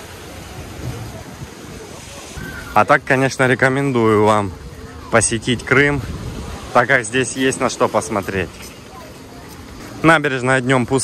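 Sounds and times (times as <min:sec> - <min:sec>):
wind rumbling on microphone: 0:00.0 - 0:02.8, 0:04.1 - 0:07.1
small waves breaking on beach: 0:00.0 - 0:11.0.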